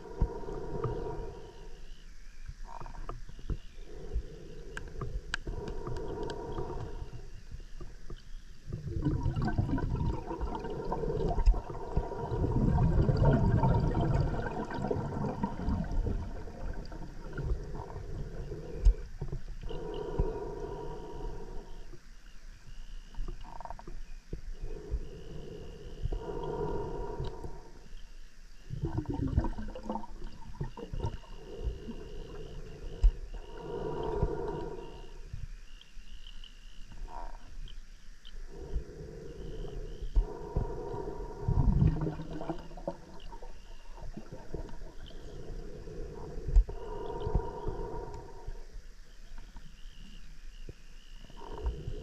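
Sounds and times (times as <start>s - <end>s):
diver breathing underwater: 0.0s - 2.0s, 3.8s - 7.4s, 8.7s - 22.0s, 24.6s - 28.0s, 28.8s - 35.3s, 38.5s - 48.8s
faint steady hum: 0.0s - 52.0s
low rumble of water and gas: 0.0s - 52.0s
gurgling: 8.8s - 17.7s.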